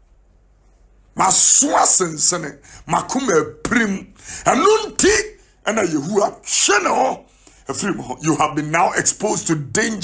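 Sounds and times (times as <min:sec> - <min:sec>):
man's hoarse loud voice: 0:01.2 - 0:10.0
breath noise: 0:07.3 - 0:07.7.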